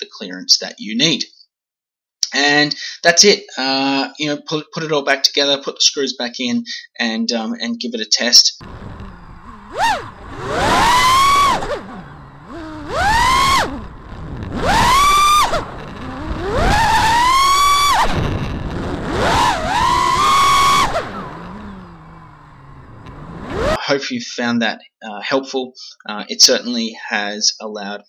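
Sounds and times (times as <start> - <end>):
quadcopter motors whining: 8.6 - 23.8.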